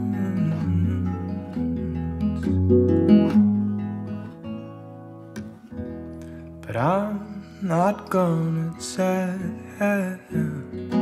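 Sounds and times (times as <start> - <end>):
acoustic guitar chords strummed: 0.0 - 11.0.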